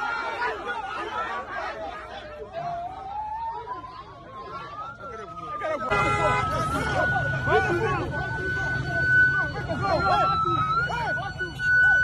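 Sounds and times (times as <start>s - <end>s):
crowd shouting and chattering: 0.0s - 12.0s
high wavering siren: 2.6s - 12.0s
horn blast: 5.9s - 6.7s.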